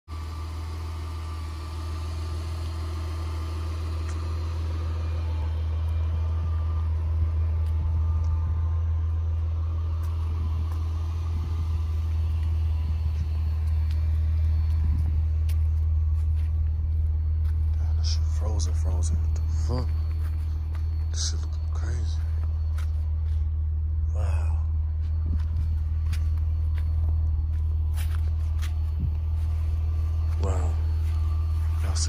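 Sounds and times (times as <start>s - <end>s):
steady low rumble: 0.1s - 32.0s.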